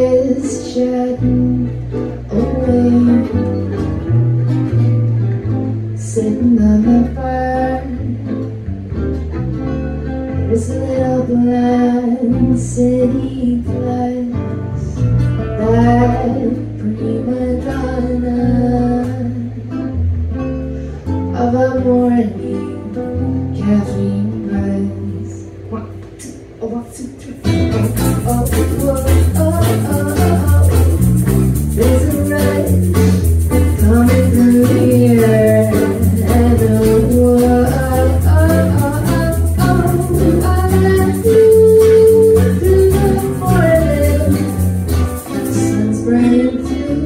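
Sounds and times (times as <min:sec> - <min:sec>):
woman singing: 0:00.0 - 0:03.9, 0:05.9 - 0:08.6, 0:10.4 - 0:20.0, 0:21.3 - 0:47.0
plucked acoustic guitar: 0:00.0 - 0:47.0.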